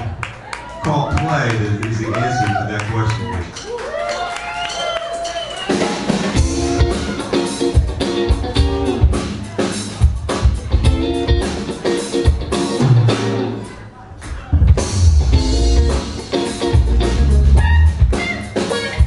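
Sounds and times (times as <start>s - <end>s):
live rock band: 3.5s - 19.0s
drum-kit beat: 4.8s - 19.0s
electric guitars playing chords: 5.9s - 19.0s.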